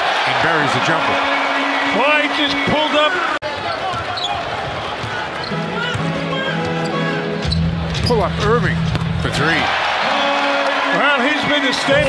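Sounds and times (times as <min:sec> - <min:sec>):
arena music: 0:00.7 - 0:03.3, 0:05.4 - 0:12.0.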